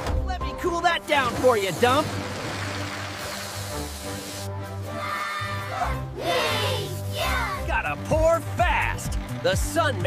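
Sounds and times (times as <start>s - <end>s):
water spraying from hose: 1.3s - 4.7s
cartoon music with steady beat: 2.9s - 10.0s.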